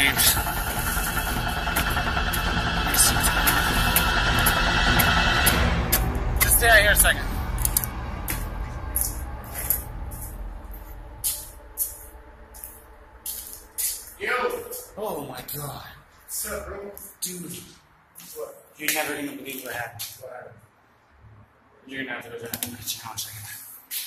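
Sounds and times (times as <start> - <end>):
droning hum with held tones: 0.0 - 17.0
footsteps on debris-covered floor: 7.6 - 14.9.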